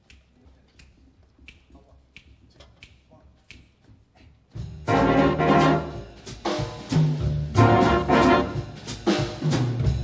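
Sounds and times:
finger snaps: 0.0s - 4.4s.

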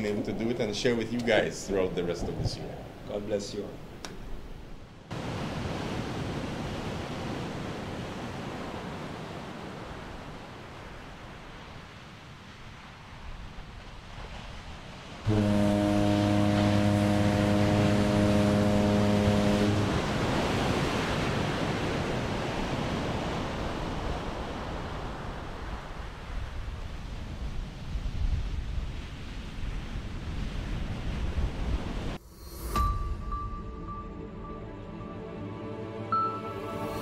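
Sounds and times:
surf rushing: 0.0s - 27.6s
wind: 0.0s - 37.0s
ship's horn blast: 15.2s - 21.5s, 32.9s - 37.0s.

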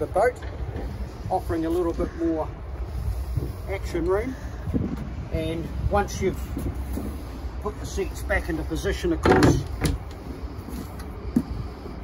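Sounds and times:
wind on microphone: 0.5s - 7.9s.

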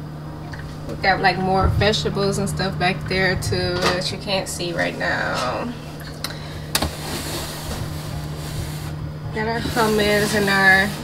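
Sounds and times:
steady low hum: 0.0s - 11.0s
plastic bin sliding: 6.8s - 11.0s.

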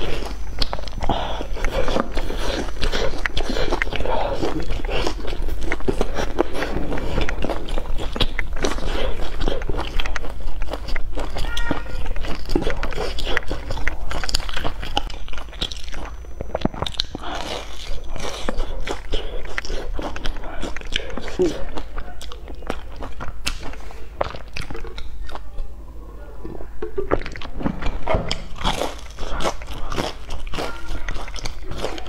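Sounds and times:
wet mouth sounds: 0.0s - 25.5s, 26.4s - 32.0s
crunchy chewing: 0.0s - 32.0s.

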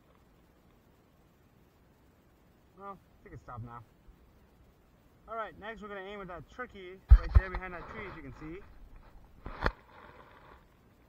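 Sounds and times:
faint rustle: 0.0s - 11.0s.

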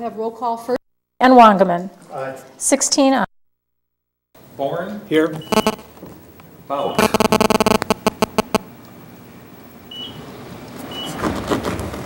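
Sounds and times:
electronic buzzing clicks: 5.5s - 6.0s, 7.0s - 8.7s.

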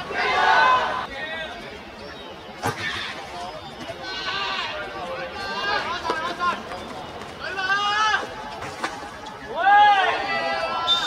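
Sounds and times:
young voices shouting: 0.0s - 1.1s.

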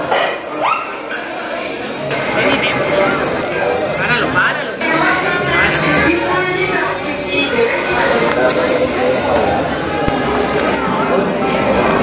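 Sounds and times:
indoor crowd chatter: 0.0s - 12.0s.

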